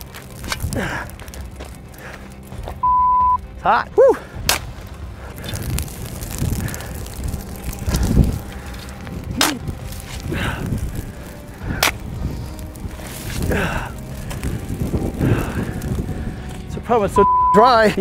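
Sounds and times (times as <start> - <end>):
wind rumble on microphone: 0.0 - 2.7, 3.9 - 17.3
shovels scraping gravelly dirt: 0.0 - 2.8, 4.1 - 16.6.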